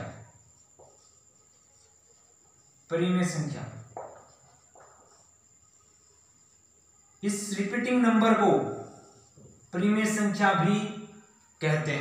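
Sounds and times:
faint high-pitched whine: 0.0s - 12.0s
man speaking: 2.9s - 3.9s, 7.2s - 8.9s, 9.8s - 12.0s.

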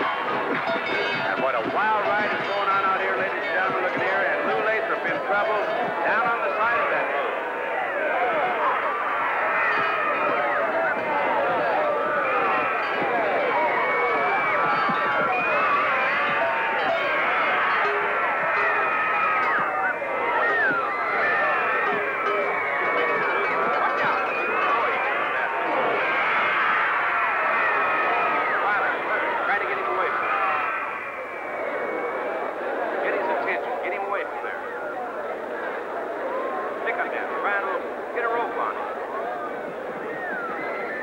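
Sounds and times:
crowd shouting and screaming: 0.0s - 41.0s.

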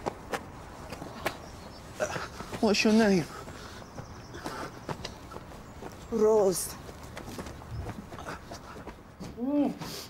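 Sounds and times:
shuffling footsteps: 0.0s - 10.0s.

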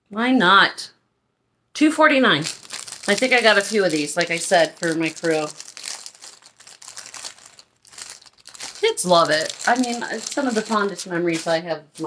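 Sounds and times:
plastic bag crinkling: 2.4s - 11.6s.

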